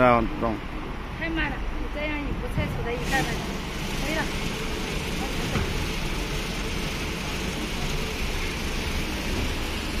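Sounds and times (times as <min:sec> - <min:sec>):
car wash machine running: 0:02.2 - 0:10.0.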